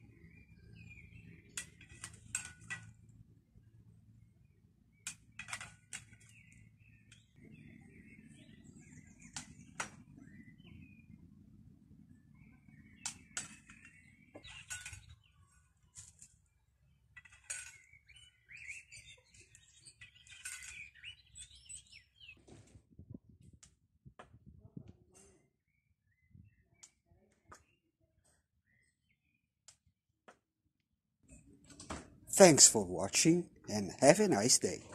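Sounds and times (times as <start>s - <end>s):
small birds chirping: 0.0s - 23.7s, 24.4s - 29.9s.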